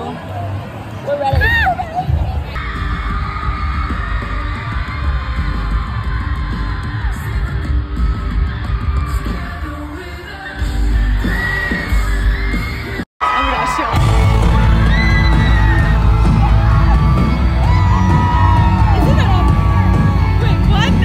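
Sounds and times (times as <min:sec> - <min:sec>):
crowd yelling along: 0:00.0 - 0:21.0.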